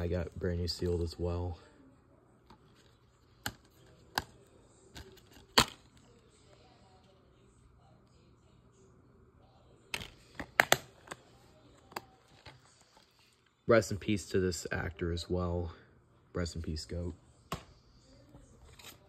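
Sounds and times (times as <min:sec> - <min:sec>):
plastic case clicks and snaps: 0:10.0 - 0:11.2.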